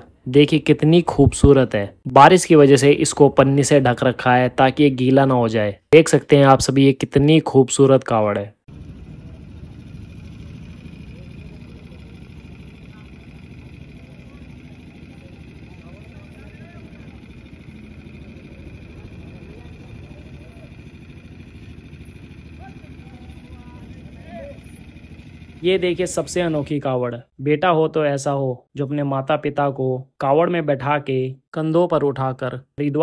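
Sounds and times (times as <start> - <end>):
traffic rumble: 8.7 - 26.8
faint distant voices: 8.9 - 25.6.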